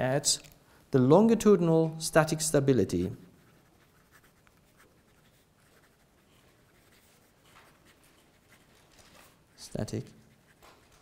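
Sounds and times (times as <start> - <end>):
pen scratching on paper: 3.4 - 8.8, 10.2 - 11.0.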